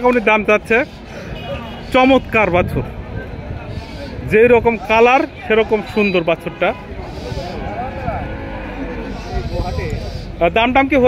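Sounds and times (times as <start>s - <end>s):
many people talking: 0.0s - 11.0s
cattle mooing: 5.9s - 10.3s.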